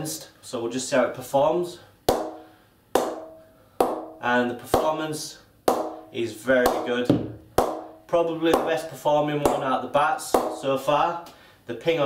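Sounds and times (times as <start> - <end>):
cricket ball knocking on bat: 3.0 - 4.2, 5.7 - 6.0, 6.7 - 7.9.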